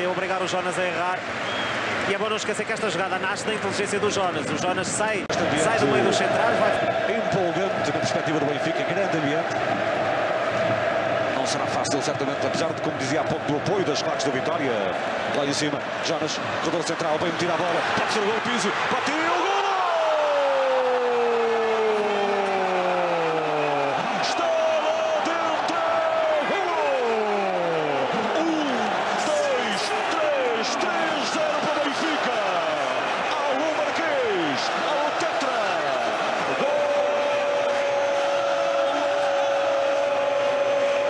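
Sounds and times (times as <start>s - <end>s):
stadium crowd roaring: 0.0s - 4.6s, 5.3s - 41.0s.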